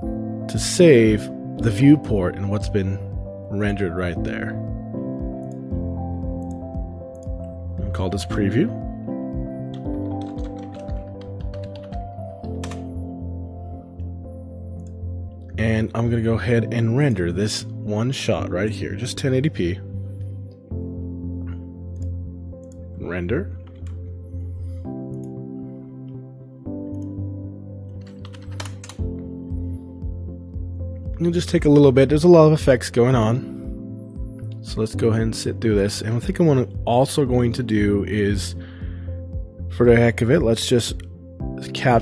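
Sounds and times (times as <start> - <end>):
background music with bass pulse: 0.0 - 42.0
keyboard typing: 9.6 - 13.0, 23.6 - 24.2, 27.9 - 29.4.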